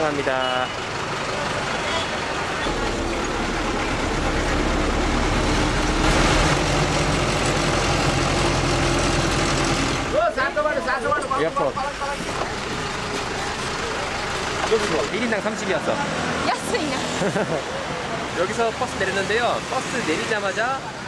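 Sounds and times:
bus engine hum: 0:00.0 - 0:19.2
road noise: 0:00.0 - 0:21.0.

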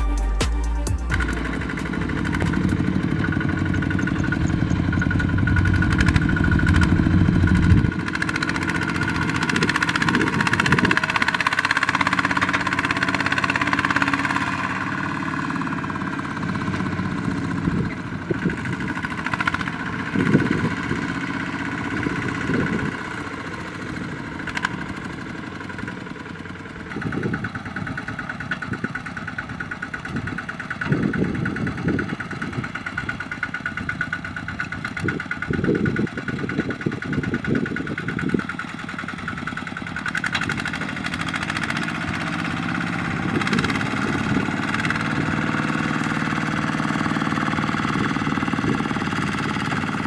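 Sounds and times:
diesel engine running: 0:00.0 - 0:50.0.

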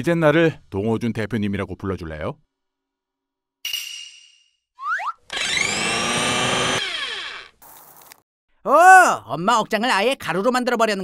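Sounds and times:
blender running: 0:05.3 - 0:07.6.

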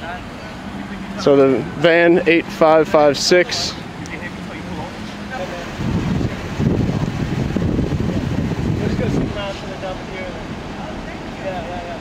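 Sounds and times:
faint voices: 0:00.0 - 0:12.0
low rumble of wind: 0:00.0 - 0:12.0.

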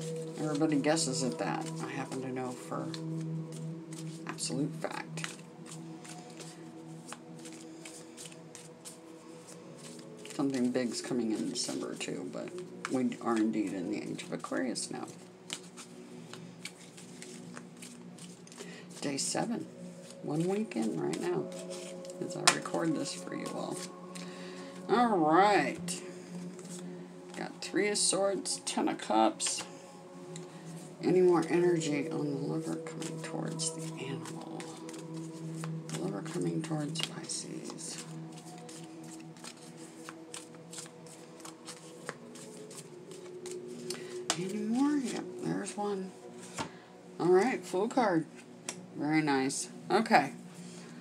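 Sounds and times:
cards being shuffled: 0:00.1 - 0:19.3, 0:20.0 - 0:24.2, 0:29.4 - 0:30.5, 0:31.3 - 0:45.8.

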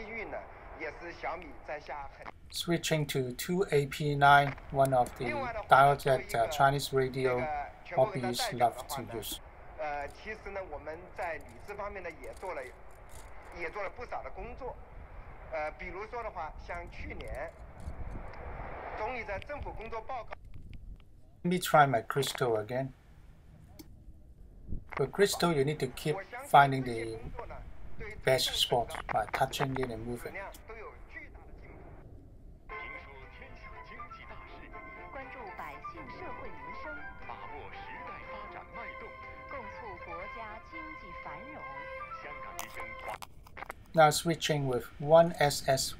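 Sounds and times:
muffled radio speech: 0:00.0 - 0:12.7, 0:25.0 - 0:32.0, 0:32.7 - 0:43.2.

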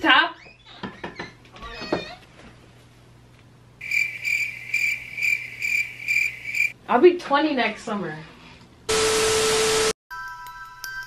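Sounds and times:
high pulsing cricket chirp: 0:03.8 - 0:06.8.

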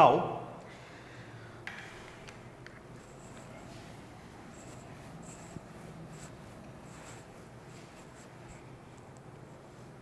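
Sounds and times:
eraser squeaking on whiteboard: 0:03.0 - 0:08.7.

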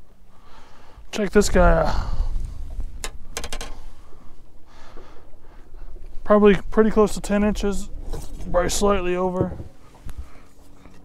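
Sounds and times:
wind on microphone: 0:01.4 - 0:04.4
handling taps and clicks: 0:03.0 - 0:03.8.

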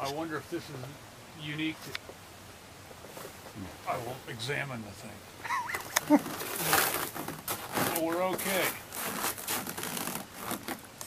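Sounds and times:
rustling and clicking: 0:05.8 - 0:11.0.

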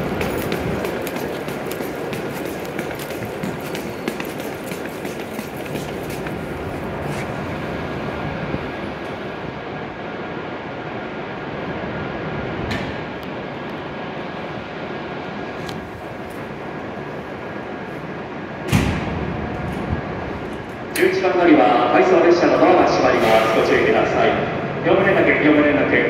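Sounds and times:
train mechanical hum: 0:00.0 - 0:26.0.

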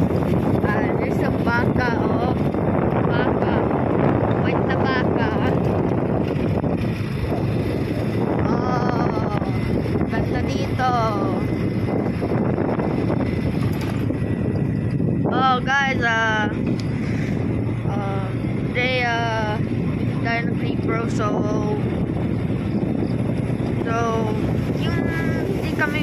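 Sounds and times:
vehicle engine running: 0:00.0 - 0:26.0
wind buffeting microphone: 0:00.0 - 0:26.0
person speaking: 0:00.6 - 0:02.5, 0:03.1 - 0:05.7, 0:08.4 - 0:11.5, 0:15.3 - 0:16.6, 0:23.8 - 0:26.0.

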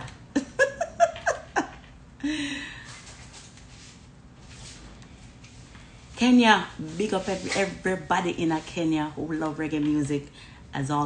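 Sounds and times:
woman laughing: 0:00.3 - 0:02.7.

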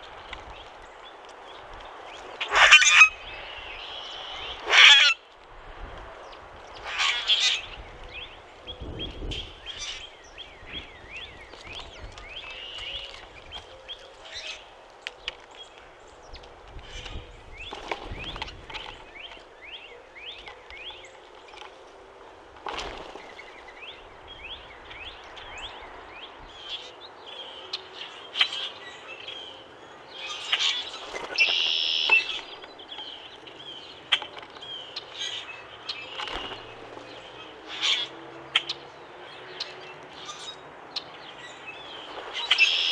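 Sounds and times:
birds chirping and calling: 0:00.0 - 0:05.3, 0:06.2 - 0:21.9, 0:22.6 - 0:42.9
bird wings fluttering: 0:16.7 - 0:19.4, 0:22.4 - 0:23.7, 0:30.9 - 0:32.7, 0:36.1 - 0:37.1.

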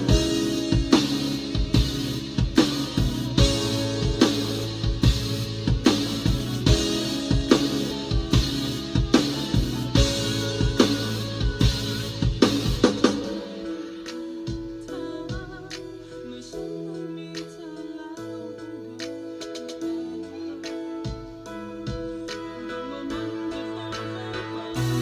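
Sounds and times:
acoustic drum kit groove: 0:00.0 - 0:18.0, 0:19.0 - 0:25.0
bass: 0:00.0 - 0:25.0
guitar: 0:00.0 - 0:25.0.

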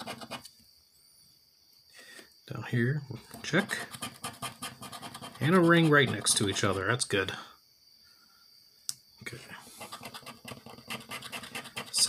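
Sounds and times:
token scraping scratch-off ticket: 0:00.0 - 0:00.4, 0:03.4 - 0:06.9, 0:09.8 - 0:12.0.

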